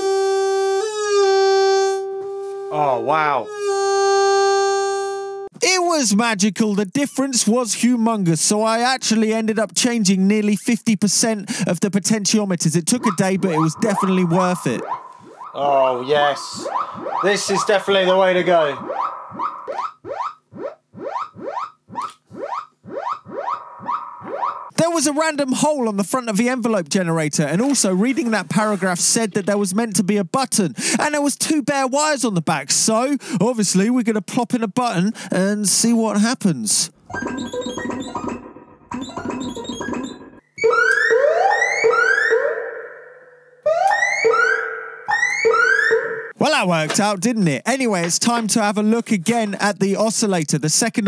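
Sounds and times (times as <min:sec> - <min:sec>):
steady held synth tone: 0:12.8 - 0:24.7
synthesizer rising pitch sweep: 0:12.8 - 0:24.7.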